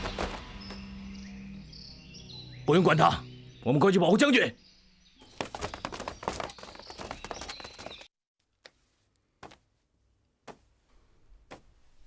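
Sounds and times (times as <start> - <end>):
hurried footsteps: 5.2 - 8.1.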